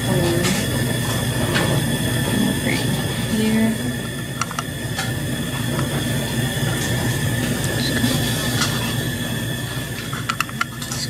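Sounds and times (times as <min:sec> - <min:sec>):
high whine: 0:00.0 - 0:11.0
low machine hum: 0:00.0 - 0:11.0
plastic dishes clicking: 0:10.2 - 0:11.0.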